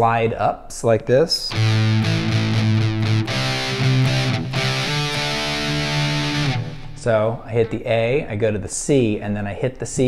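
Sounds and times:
distorted electric guitar chords: 1.5s - 7.4s.

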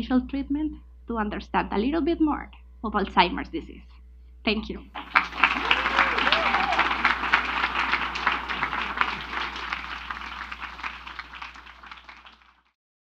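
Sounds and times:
audience applauding: 5.0s - 12.8s.

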